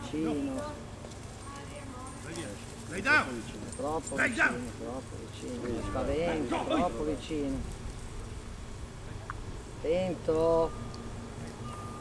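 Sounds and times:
man calling out: 4.1 - 4.9, 5.6 - 7.4.

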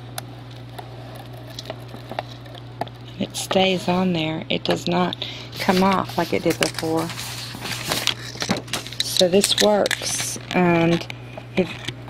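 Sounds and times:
steady low hum: 0.0 - 12.0
camera and paper handling noise: 0.6 - 2.6, 5.6 - 11.9.

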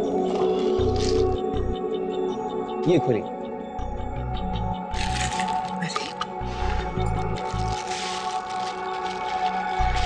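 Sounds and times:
background music with pulsing bass: 0.0 - 10.0
foil gift wrap crinkling: 5.0 - 5.8, 7.3 - 10.0.

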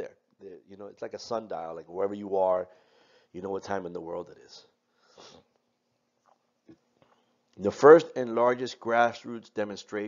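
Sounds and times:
man breathing or sniffing: 5.0 - 5.5.

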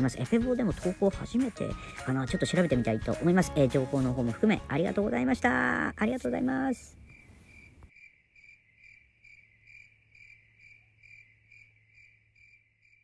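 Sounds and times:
cricket-like chirping: 6.5 - 13.0.

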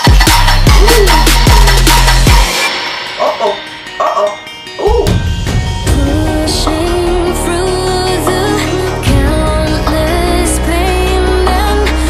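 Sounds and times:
electronic dance music: 0.0 - 5.1
vocal yelps with bending pitch: 0.7 - 1.9, 3.2 - 5.2.

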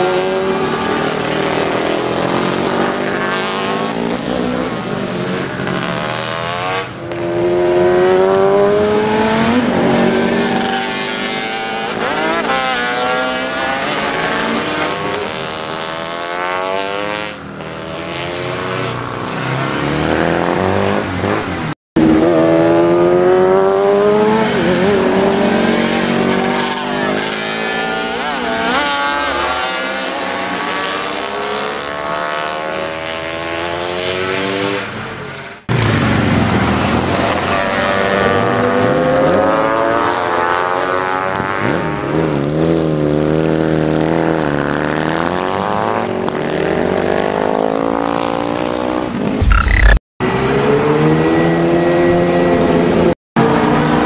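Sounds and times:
motorcycle engines revving past: 0.0 - 35.0.

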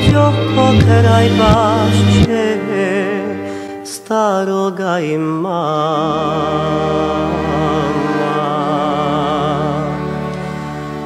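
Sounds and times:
person singing with vibrato: 0.0 - 10.4
sustained accompaniment: 0.0 - 11.0.

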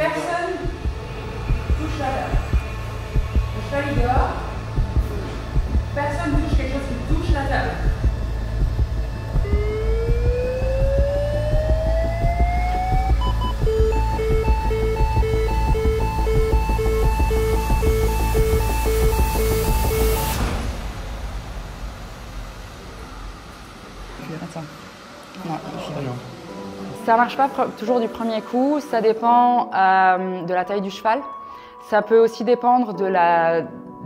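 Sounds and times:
defibrillator rising charge tone: 0.0 - 29.1
two-note beeping: 7.9 - 20.4
burst of noise: 17.7 - 27.2.

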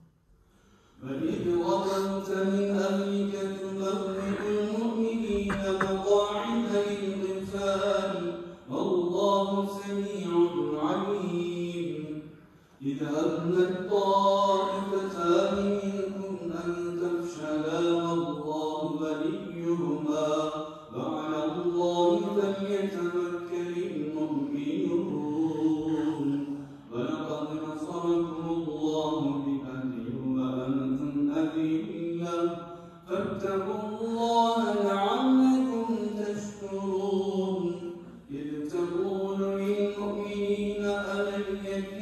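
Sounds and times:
man chanting melodically: 1.0 - 12.2, 12.8 - 42.0.

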